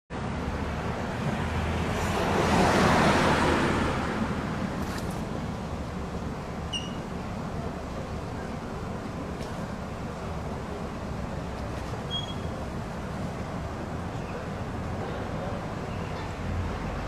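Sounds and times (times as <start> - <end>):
vehicle passing by: 0.6 - 5.4.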